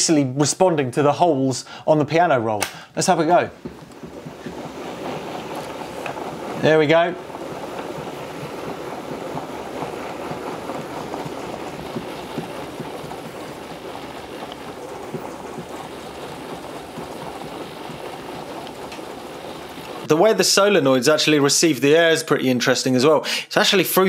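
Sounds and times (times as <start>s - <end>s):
steady rush of air: 2.7s - 20.2s.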